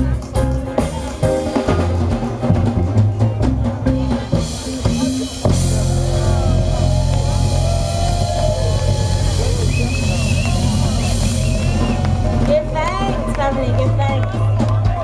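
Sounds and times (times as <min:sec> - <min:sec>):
reggae band playing: 0:00.0 - 0:15.0
held low bass note: 0:05.4 - 0:12.8.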